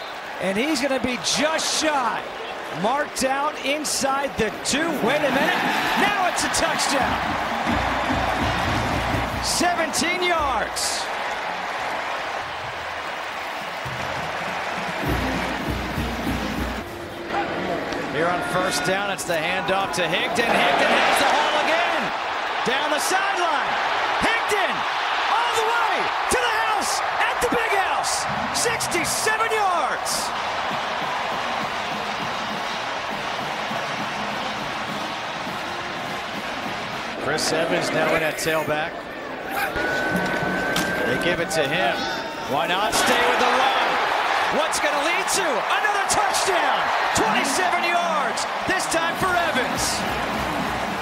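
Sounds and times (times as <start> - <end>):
stadium crowd cheering: 0.0 - 51.0
marching band music: 5.1 - 10.6, 12.9 - 17.3, 27.2 - 37.3, 45.7 - 51.0.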